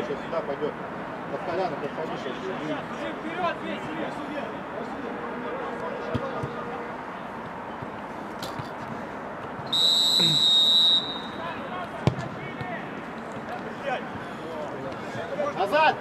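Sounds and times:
referee's whistle: 0:09.7 - 0:11.5.

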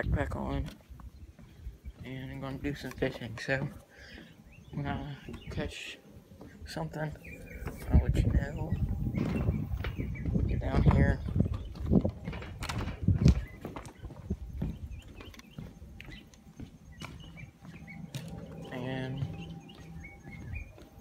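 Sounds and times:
footsteps on wooden dock boards: 0:00.0 - 0:21.0.

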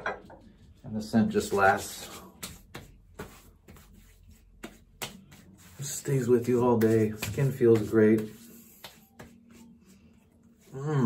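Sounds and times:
palms patting skin: 0:01.6 - 0:09.8.

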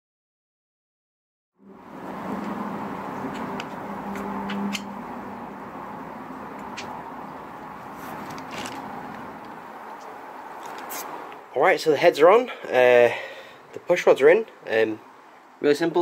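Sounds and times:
steady background hiss: 0:04.3 - 0:16.0.

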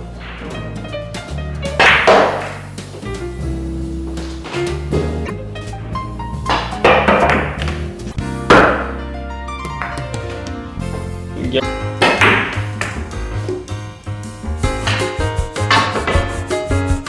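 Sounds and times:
background music with bass line: 0:00.0 - 0:17.0.

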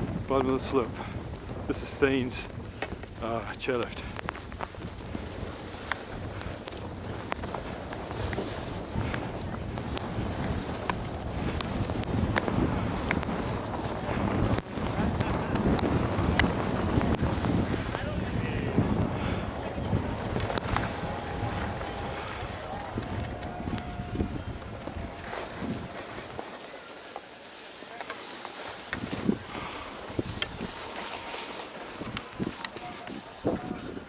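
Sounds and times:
wind rushing over microphone: 0:00.0 - 0:26.9, 0:28.4 - 0:34.0
skis sliding on snow: 0:00.0 - 0:34.0.

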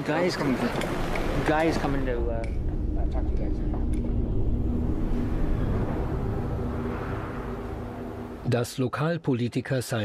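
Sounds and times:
low steady rumble: 0:00.9 - 0:08.6.

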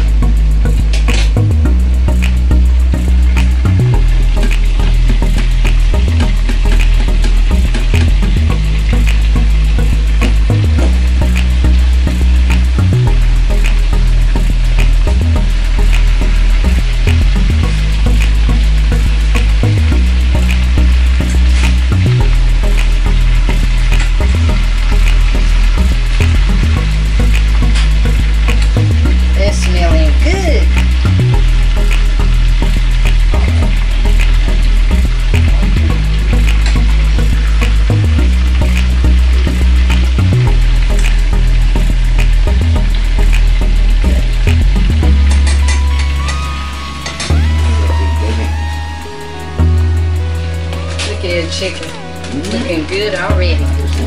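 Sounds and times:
music with deep bass line: 0:00.0 - 0:54.0
chicken sizzling in oil: 0:04.0 - 0:35.3.

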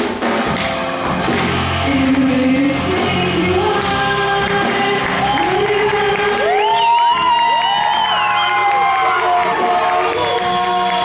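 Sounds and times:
live rock band playing: 0:00.0 - 0:11.0
audience cheering: 0:04.8 - 0:11.0
women singing long high notes: 0:08.7 - 0:11.0.

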